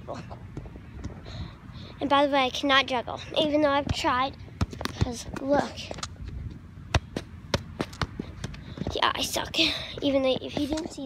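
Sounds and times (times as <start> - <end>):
soccer ball kicked thuds: 3.7 - 6.0, 6.9 - 9.1.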